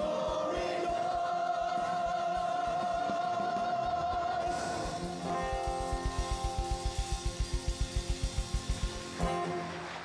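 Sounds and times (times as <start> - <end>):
choir and orchestra sustained chord: 0.0 - 5.8
steady low beat: 4.5 - 9.5.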